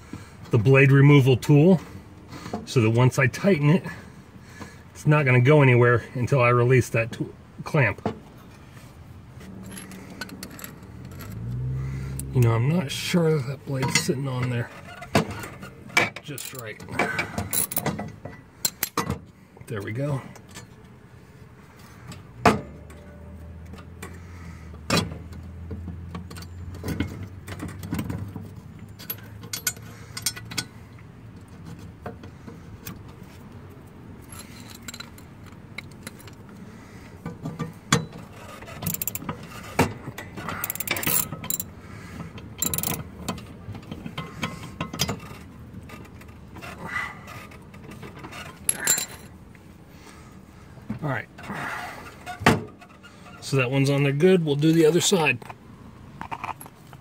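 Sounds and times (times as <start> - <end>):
metal clicks and clinks: 9.6 - 12.4, 16.2 - 19.1, 28.9 - 30.7, 34.2 - 36.4, 38.7 - 39.4, 40.2 - 41.7, 42.6 - 43.4, 48.6 - 49.4
ratchet clicking: 38.8 - 39.3, 40.6 - 41.7, 42.6 - 43.0.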